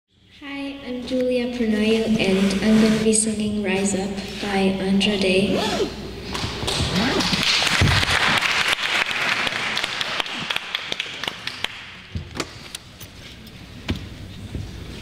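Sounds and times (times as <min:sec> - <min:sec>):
audience clapping: 0:06.7 - 0:12.1.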